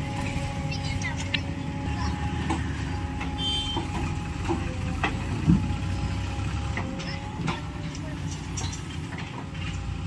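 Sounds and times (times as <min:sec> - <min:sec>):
diesel engine running under load: 0:00.0 - 0:10.0.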